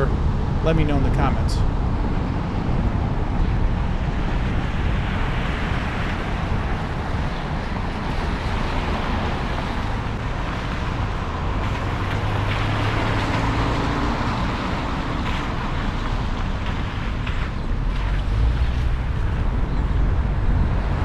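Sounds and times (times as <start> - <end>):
car driving on wet pavement: 0.0 - 21.0.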